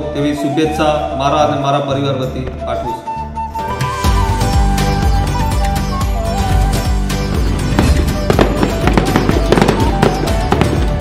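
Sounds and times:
background music: 0.0 - 11.0
firework crackles and pops: 7.7 - 11.0.

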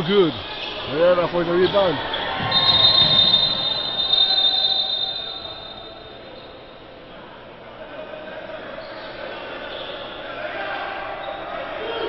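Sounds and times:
indoor gym noise: 0.0 - 12.0
referee's whistle blast: 2.4 - 6.7.

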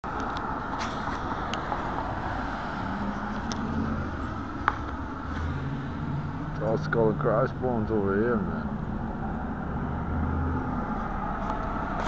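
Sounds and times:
low engine hum: 0.0 - 12.0
passing cars: 0.0 - 12.0.

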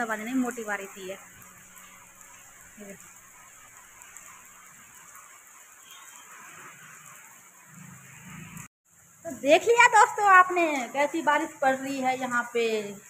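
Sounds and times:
heavy rain on cement: 0.0 - 13.0.

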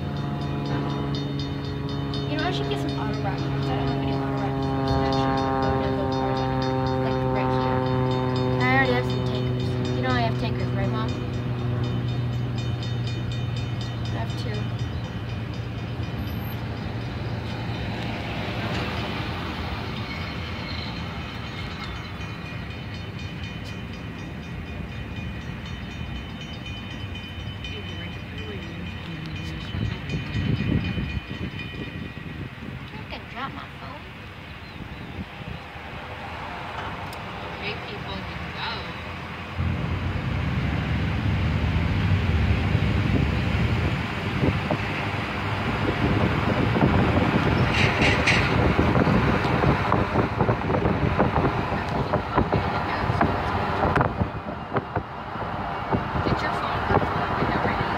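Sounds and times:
train horn chord: 0.0 - 13.5
freight cars rumbling on rails: 0.0 - 57.9.

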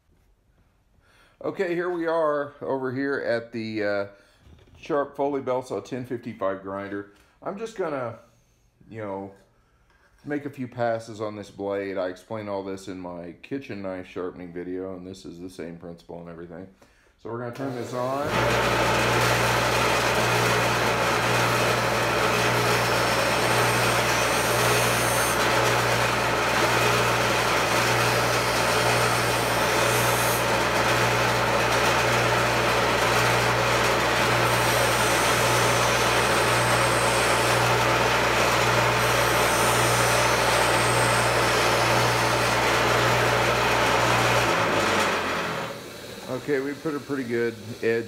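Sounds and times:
grinder motor humming: 17.6 - 48.0
blade grinding hiss: 45.9 - 48.0.

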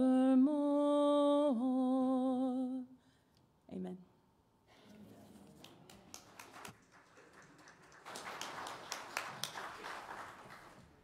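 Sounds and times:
congregation applauding: 5.6 - 11.0.

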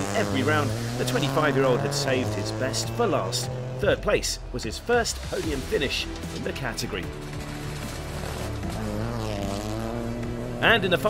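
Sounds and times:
rally car engine passing: 0.0 - 4.9, 5.6 - 11.0
background music: 0.0 - 11.0.

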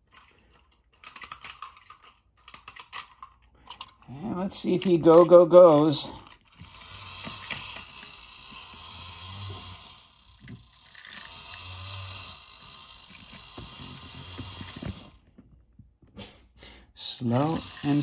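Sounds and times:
clockwork toy ticking: 6.3 - 15.2, 17.3 - 18.0.

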